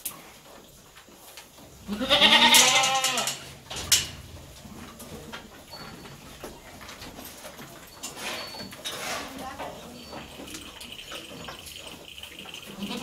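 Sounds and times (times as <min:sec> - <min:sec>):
goat bleating: 0:01.9 - 0:03.4, 0:12.7 - 0:13.0.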